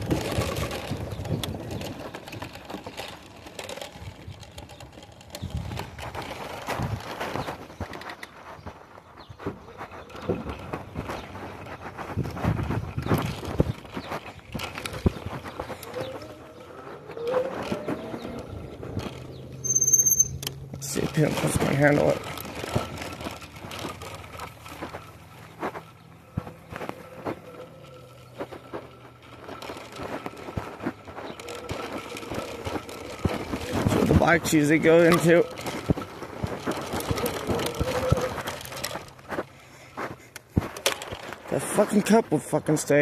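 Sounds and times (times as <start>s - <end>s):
bike frame rattling and knocking: 0.0s - 43.0s
wind and road noise: 0.0s - 43.0s.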